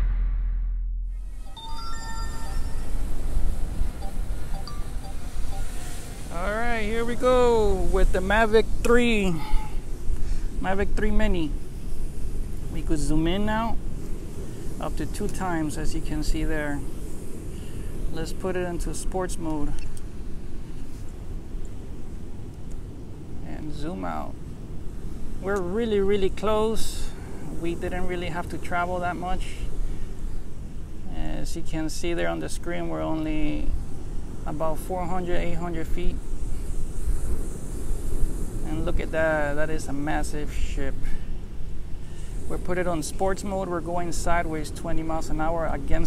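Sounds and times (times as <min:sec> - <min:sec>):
short electronic tones: 0:01.0 - 0:06.1
steady outdoor hiss: 0:01.1 - 0:46.0.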